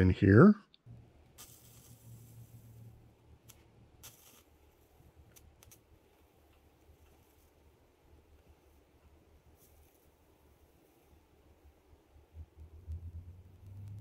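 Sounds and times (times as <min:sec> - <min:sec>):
faint low hum: 0:00.0 - 0:14.0.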